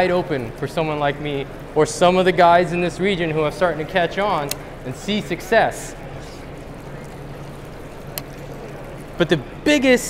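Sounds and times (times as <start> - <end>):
busy exhibition hall noise: 0.0 - 10.0.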